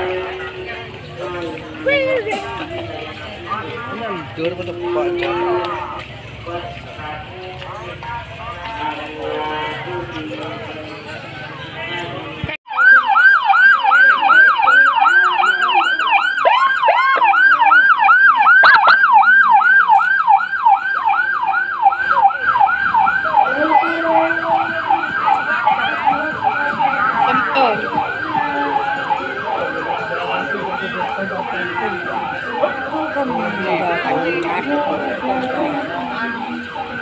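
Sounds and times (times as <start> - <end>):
crowd noise: 0.0 - 37.0
electronic siren yelping: 12.7 - 37.0.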